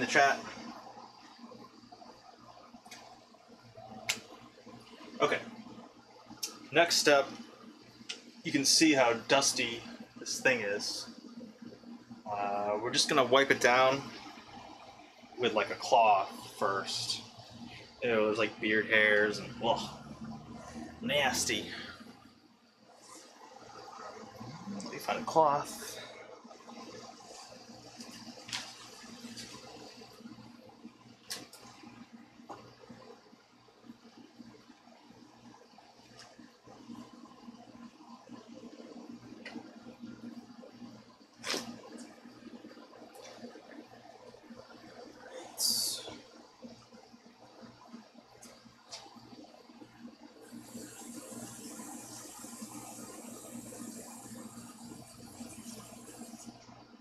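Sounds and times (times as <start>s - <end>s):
steady high hiss: 6.3s - 11.2s, 12.0s - 22.3s, 45.2s - 46.3s, 50.4s - 56.6s.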